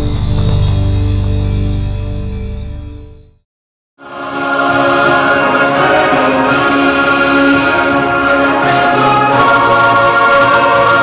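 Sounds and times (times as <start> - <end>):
choir singing sustained chords: 4.0 - 11.0.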